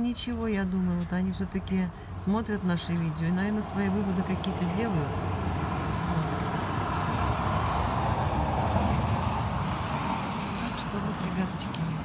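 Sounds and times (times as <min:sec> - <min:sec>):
vehicle passing on wet street: 0:02.8 - 0:12.0.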